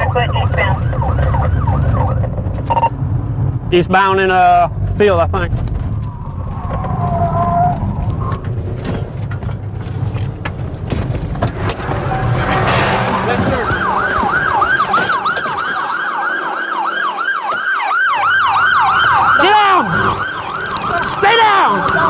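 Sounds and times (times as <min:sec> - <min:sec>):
police siren yelping: 0:00.0 - 0:02.9, 0:13.8 - 0:22.0
siren pitch sliding down: 0:11.8 - 0:22.0.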